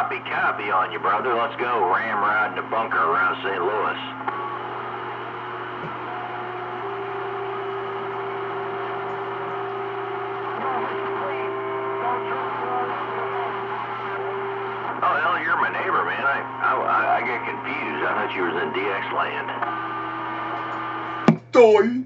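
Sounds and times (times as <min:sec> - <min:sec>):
radio static hiss: 0:00.0 - 0:04.8, 0:09.6 - 0:21.1.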